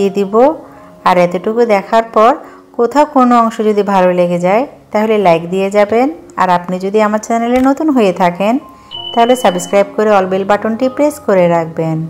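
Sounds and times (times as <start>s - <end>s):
woman speaking: 1.1s - 12.0s
electronic bell ding: 8.8s - 10.0s.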